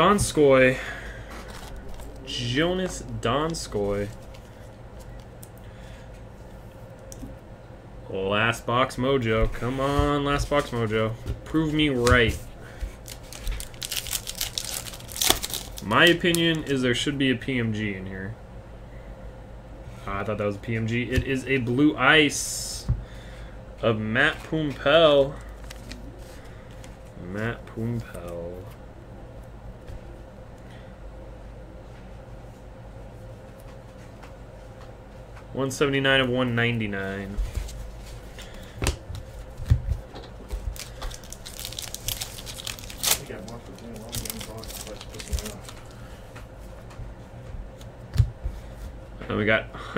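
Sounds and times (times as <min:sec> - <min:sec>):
wrapper tearing and crinkling: 0:13.0 - 0:16.7, 0:25.5 - 0:26.0, 0:40.7 - 0:46.0.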